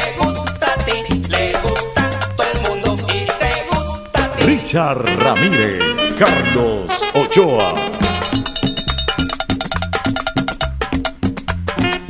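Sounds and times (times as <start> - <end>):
latin dance music: 0.0 - 12.0.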